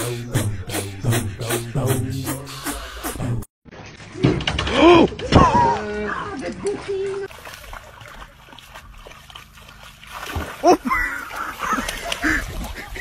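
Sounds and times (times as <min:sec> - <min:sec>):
dog splashing in water: 0:05.6 - 0:13.0.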